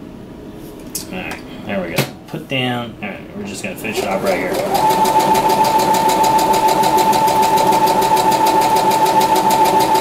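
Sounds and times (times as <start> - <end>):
sewing machine stitching: 4.0 - 10.0.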